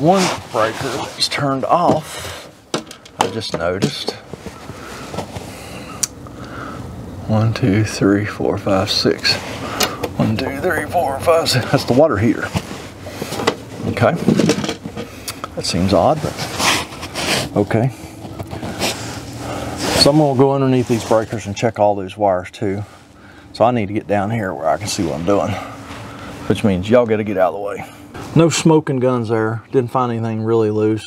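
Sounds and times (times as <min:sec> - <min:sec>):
faint steady hum: 0:00.0 - 0:31.0
man breathing: 0:04.6 - 0:07.0, 0:17.9 - 0:20.0, 0:22.9 - 0:23.5, 0:25.6 - 0:26.5.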